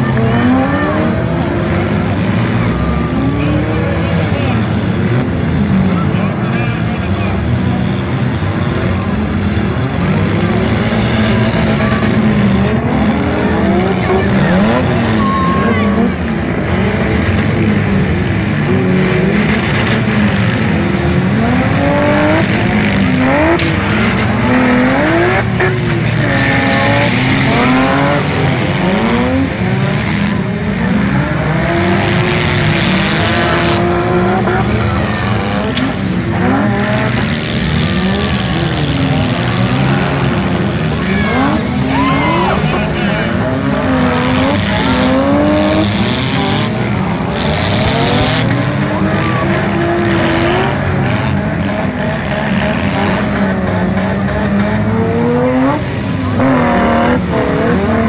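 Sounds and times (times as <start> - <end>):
car engines revving hard: 0.0 - 58.0.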